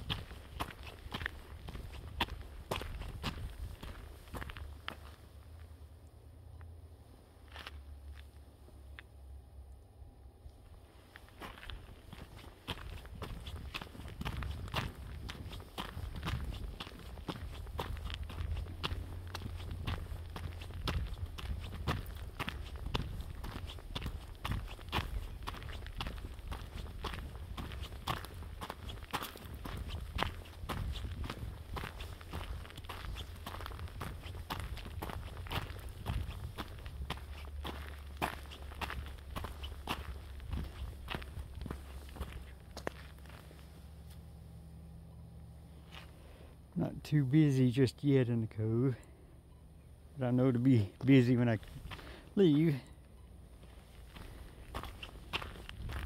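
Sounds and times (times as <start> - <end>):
footsteps on gravel: 0.0 - 5.7, 7.4 - 9.0, 10.7 - 44.2, 45.8 - 46.3, 50.2 - 52.9, 53.5 - 56.0.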